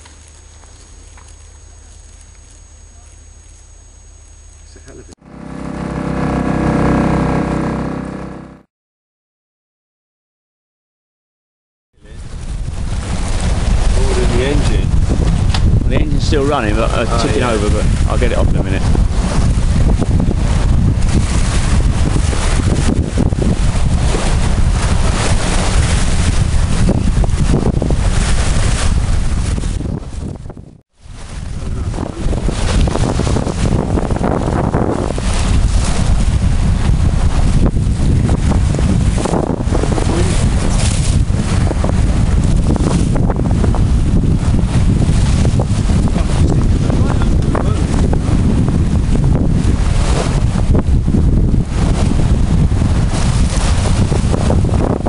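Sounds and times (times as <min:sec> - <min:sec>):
water rushing along a hull: 0:04.8 - 0:08.6, 0:12.1 - 0:55.0
wind buffeting the microphone: 0:12.0 - 0:55.0.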